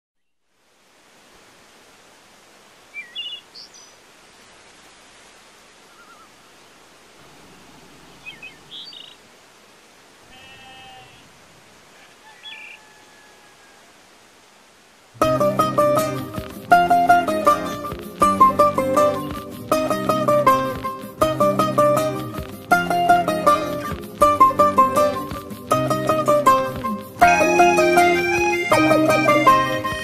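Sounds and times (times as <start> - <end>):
steady background hiss: 0.2 - 30.0
birds chirping: 2.9 - 4.0, 5.8 - 9.3, 10.3 - 13.8
animal call: 10.2 - 14.0.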